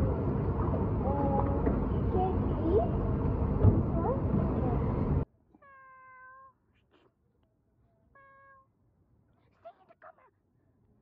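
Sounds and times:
loud rumbling outdoor noise: 0:00.0 - 0:05.3
cat meowing: 0:05.6 - 0:06.6.

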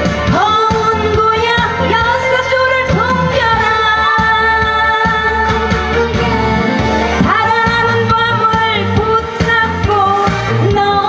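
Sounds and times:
music accompaniment: 0:00.0 - 0:11.0
woman singing: 0:00.0 - 0:11.0.

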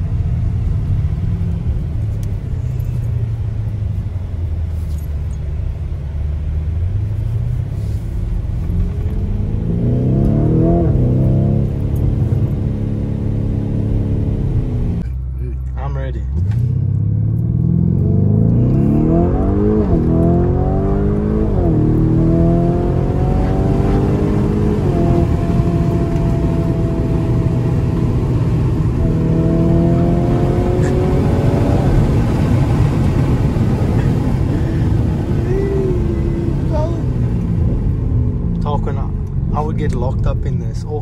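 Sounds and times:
car engine accelerating: 0:00.0 - 0:41.0.

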